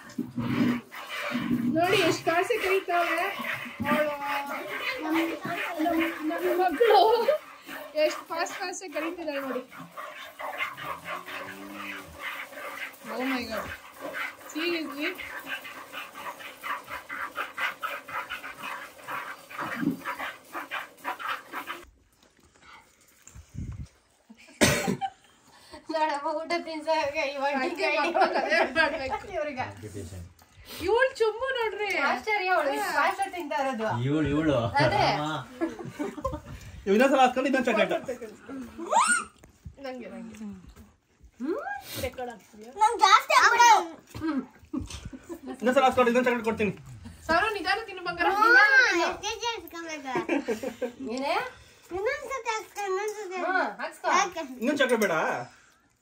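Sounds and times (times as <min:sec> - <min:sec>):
milk squirting into bucket: 0:00.0 - 0:23.9
voices talking: 0:01.7 - 0:20.2
rising squeal-like vocal sound: 0:38.8 - 0:39.4.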